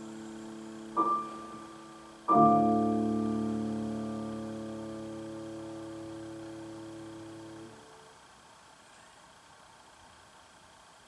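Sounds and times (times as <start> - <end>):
grand piano chord ringing: 0.0 - 8.1.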